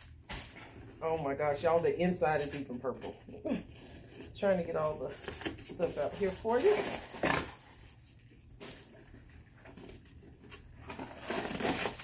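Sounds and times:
paper rustling and crinkling: 2.4 - 12.0.

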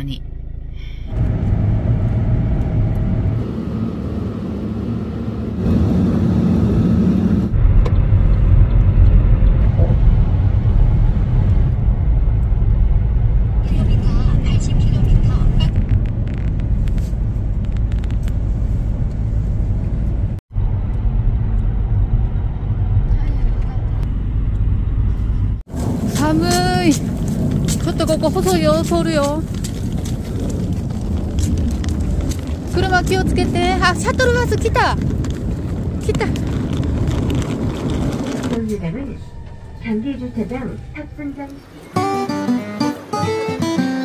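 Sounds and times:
car road and engine rumble: 0.0 - 44.0.

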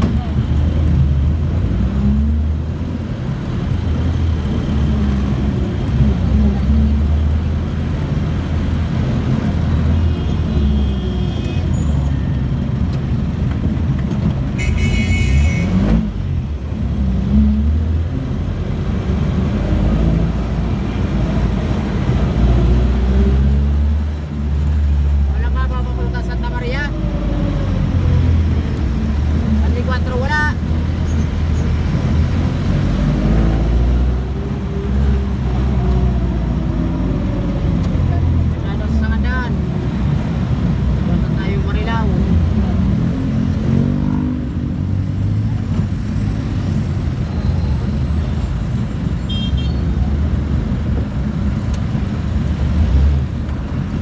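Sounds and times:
diesel engine revving: 30.6 - 39.0.

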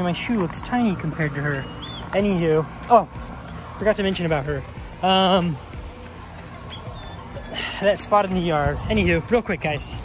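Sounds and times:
high-pitched animal calls: 1.4 - 2.7, 6.6 - 8.2.

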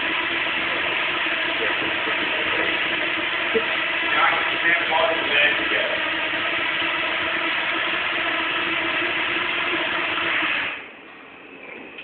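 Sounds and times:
drone propellers buzzing: 0.0 - 10.9.

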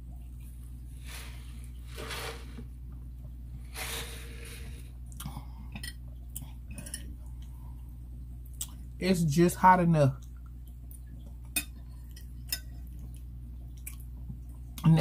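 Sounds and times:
steady low hum: 0.0 - 15.0
breathing: 3.7 - 5.7
mouth chewing sounds: 12.9 - 14.9.

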